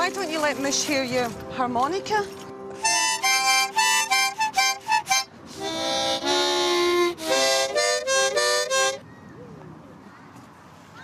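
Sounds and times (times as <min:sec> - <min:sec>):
harmonica playing: 0:02.7 - 0:09.0.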